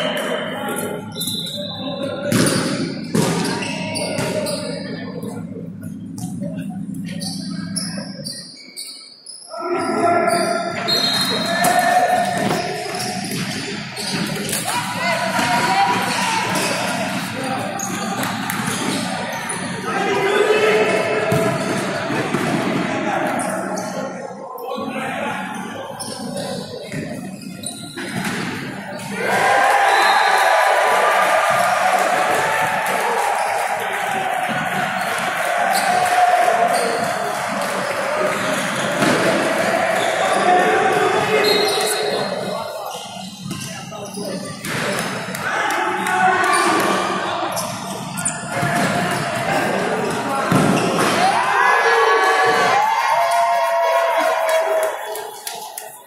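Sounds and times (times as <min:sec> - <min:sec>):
players shouting: 0:09.5 - 0:23.9, 0:29.0 - 0:43.0, 0:44.7 - 0:55.9.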